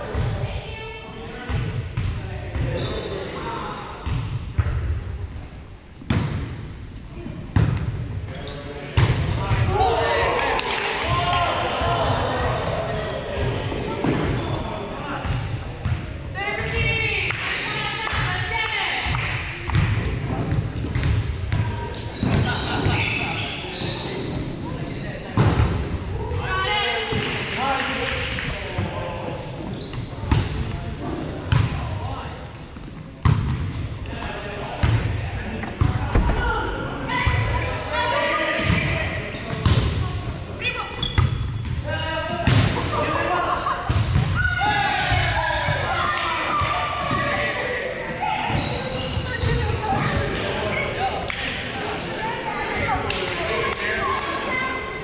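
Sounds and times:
players chattering: 6.7s - 55.0s.

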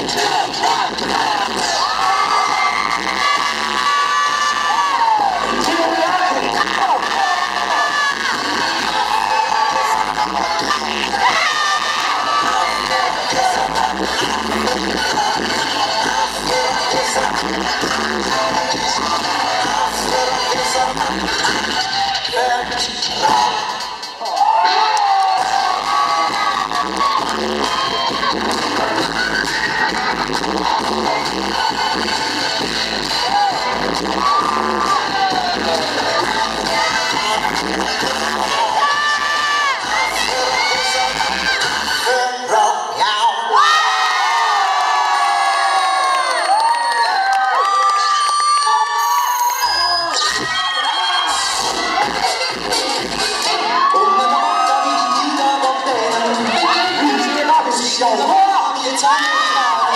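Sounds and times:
audience cheering and whooping: 0.0s - 22.6s, 23.2s - 42.2s, 43.5s - 59.9s
loud dance music: 0.0s - 59.9s.

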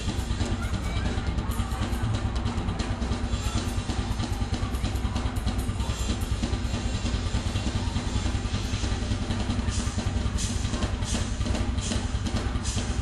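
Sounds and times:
drum kit playing fast rhythm: 0.0s - 13.0s
music mix: 0.0s - 13.0s.

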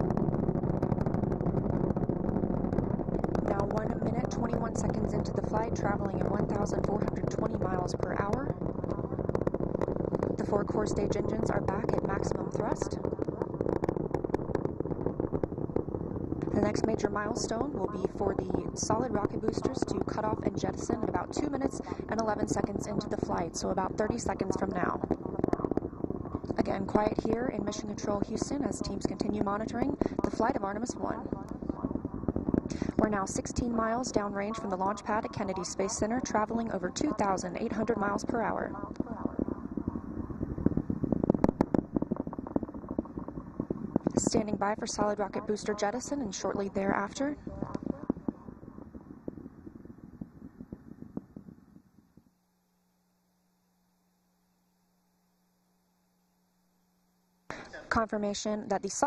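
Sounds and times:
rocket engines rumbling and crackling: 0.0s - 52.3s, 57.5s - 59.0s.

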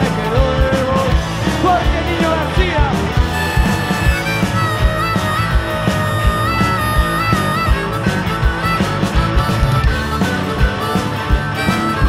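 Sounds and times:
bending guitar notes: 0.0s - 12.0s
rock band playing: 0.0s - 12.0s
wavering harmonica line: 0.0s - 12.0s.

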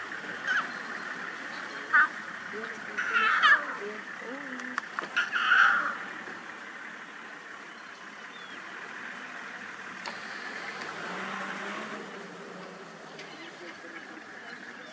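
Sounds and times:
vehicle engine running: 0.0s - 14.9s.

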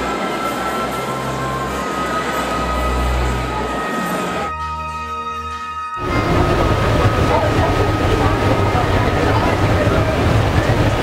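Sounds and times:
ferry engine rumble: 6.0s - 11.0s
rushing noise: 6.0s - 11.0s.

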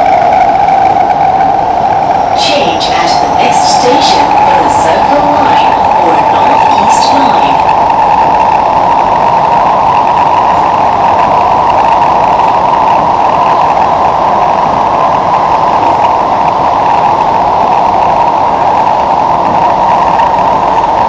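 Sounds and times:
train rumbling on rails: 0.0s - 21.0s.

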